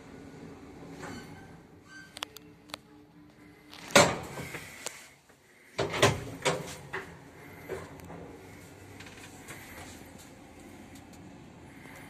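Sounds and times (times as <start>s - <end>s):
lift running hum: 0.0s - 12.0s.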